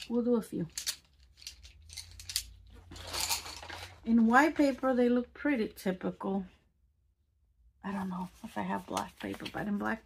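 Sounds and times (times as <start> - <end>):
pencils clicking: 0.0 - 3.9.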